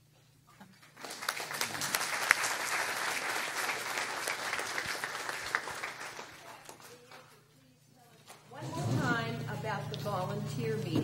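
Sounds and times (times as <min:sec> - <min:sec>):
roomful of people applauding: 0:00.7 - 0:07.5.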